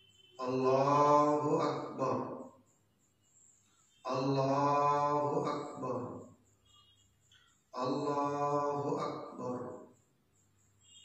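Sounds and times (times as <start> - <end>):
man chanting a prayer: 0.4 - 2.4, 4.0 - 6.3, 7.8 - 9.9.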